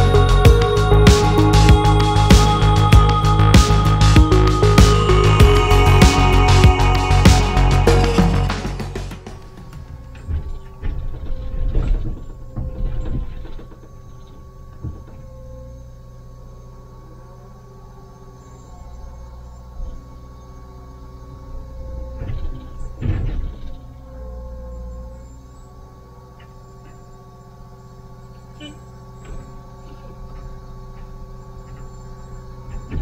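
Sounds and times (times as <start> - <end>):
diesel engine running: 0.0 - 33.0
hydraulic whine: 0.0 - 33.0.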